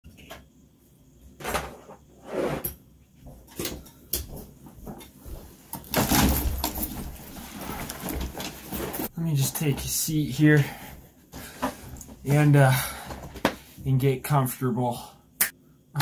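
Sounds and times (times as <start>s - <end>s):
knocks clicks and rustles: 3.4s - 10.0s.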